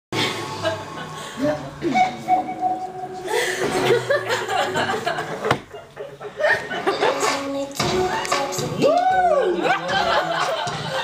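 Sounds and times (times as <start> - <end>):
students chattering and chuckling: 0.2 - 7.2.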